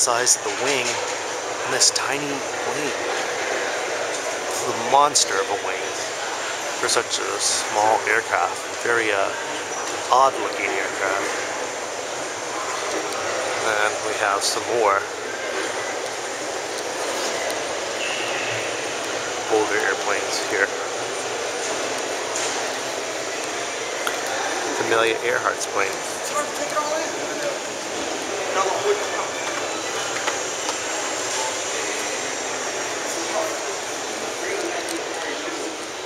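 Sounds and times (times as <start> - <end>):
steady background hiss: 0.0 - 36.0.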